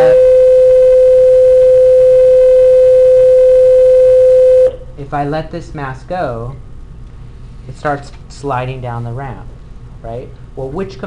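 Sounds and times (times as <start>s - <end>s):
steady electronic tone: 0.0s - 4.9s.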